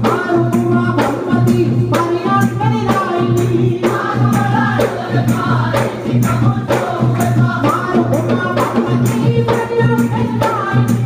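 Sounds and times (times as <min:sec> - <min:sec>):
barrel drums beating: 0:00.0 - 0:11.0
men singing in chorus: 0:00.0 - 0:11.0.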